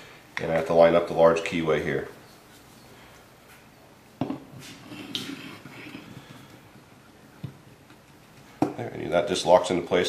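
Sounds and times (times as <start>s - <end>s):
faint scraping: 4.6s - 6.5s.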